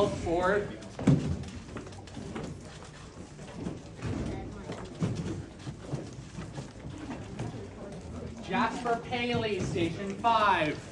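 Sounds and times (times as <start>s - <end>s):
people chattering: 0.0s - 10.9s.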